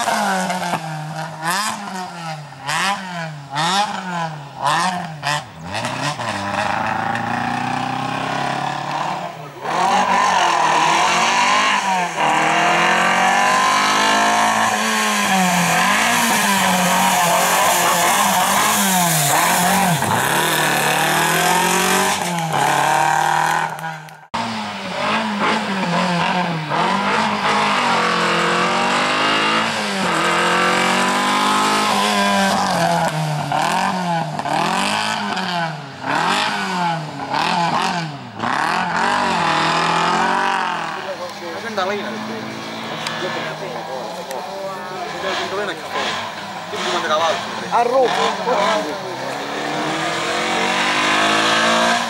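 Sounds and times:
car engine revving hard: 0.0 - 52.0.

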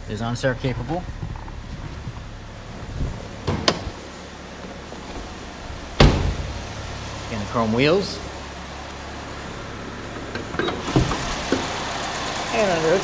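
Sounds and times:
steady low hum: 0.0 - 13.0
car door slamming: 3.2 - 7.0.

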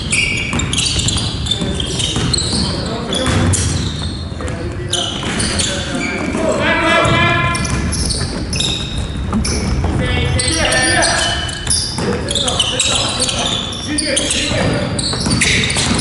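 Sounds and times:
basketball dribbling on wooden floor: 0.0 - 3.6, 14.6 - 16.0
shoes squeaking: 0.0 - 16.0
players calling out: 0.1 - 16.0.

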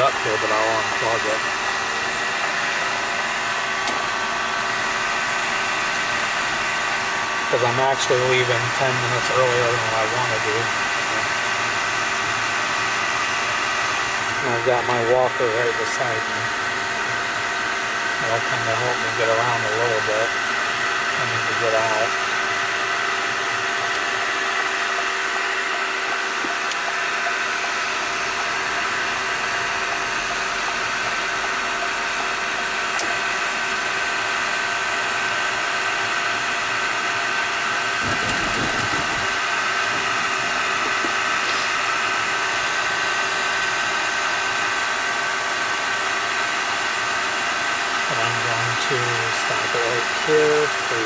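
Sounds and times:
car engine and road noise: 0.0 - 50.4
heater fan whirring: 0.0 - 51.0.

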